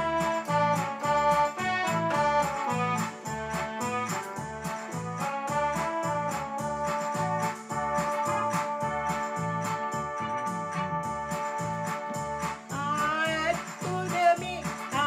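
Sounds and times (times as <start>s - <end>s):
organ-like keyboard melody: 0.0s - 15.0s
repeating bass pattern: 0.0s - 15.0s.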